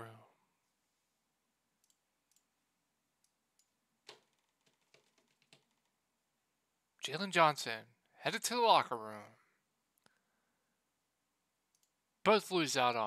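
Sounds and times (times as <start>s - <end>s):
computer mouse clicks: 1.8s - 2.5s, 11.7s - 12.0s.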